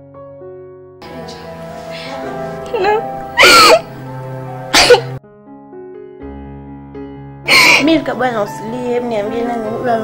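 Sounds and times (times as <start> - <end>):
background music of held notes: 0.0 - 10.0
woman sobbing: 2.0 - 3.9, 7.5 - 8.0.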